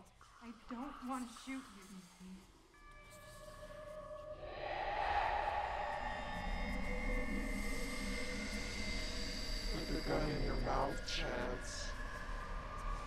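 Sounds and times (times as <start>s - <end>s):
horror film score drone: 0.0s - 13.0s
low rumble: 4.4s - 10.9s.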